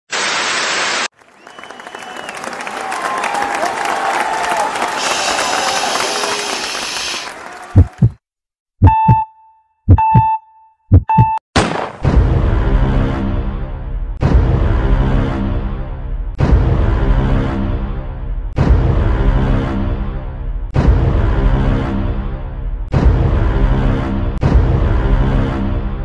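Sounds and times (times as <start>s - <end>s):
heartbeat thumps: 7.7s - 8.2s, 8.8s - 9.3s, 9.9s - 11.4s
electronic starting beeps: 9.9s - 11.4s.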